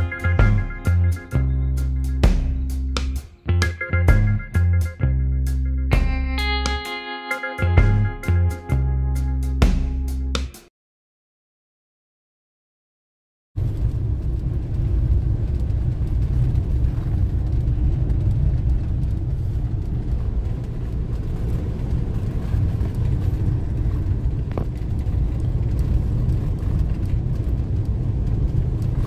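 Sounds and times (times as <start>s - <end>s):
engine and road rumble: 0.0s - 6.7s, 13.6s - 29.0s.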